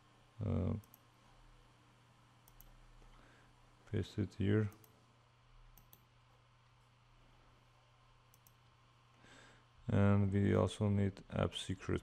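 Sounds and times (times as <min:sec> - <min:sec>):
faint computer mouse clicks: 0:00.8 - 0:01.1, 0:02.4 - 0:02.8, 0:04.7 - 0:05.0, 0:05.8 - 0:06.1, 0:08.3 - 0:08.7.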